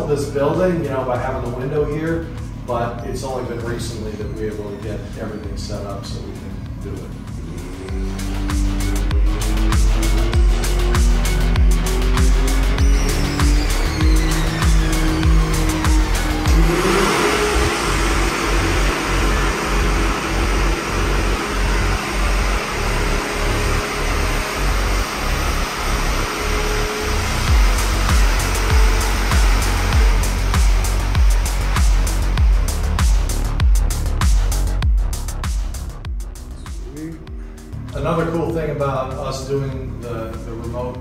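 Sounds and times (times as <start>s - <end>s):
electronic music with steady beat: 0.0s - 41.0s
vehicle engine revving under load: 5.9s - 38.6s.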